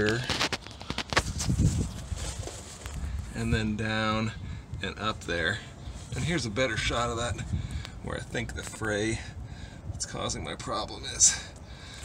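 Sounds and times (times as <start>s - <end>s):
camera handling rustle: 0.0s - 3.2s.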